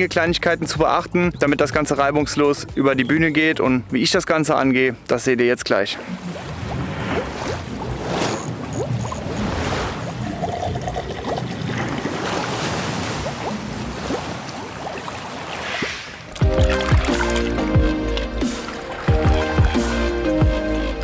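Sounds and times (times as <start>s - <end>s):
water-like splashes: 5.7s - 20.1s
noisy whooshes: 12.5s - 17.4s.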